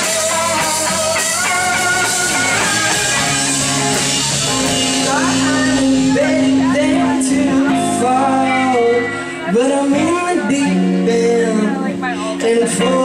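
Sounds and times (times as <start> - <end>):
electric guitar lead with bends: 0.0 - 13.0
live rock band playing: 0.0 - 13.0.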